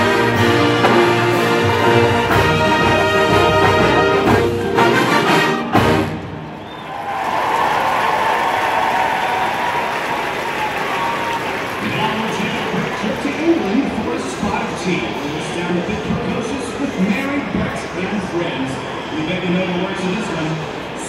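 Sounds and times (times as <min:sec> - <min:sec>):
marching band brass and drums: 0:00.0 - 0:07.0
crowd cheering and applause: 0:00.0 - 0:14.3.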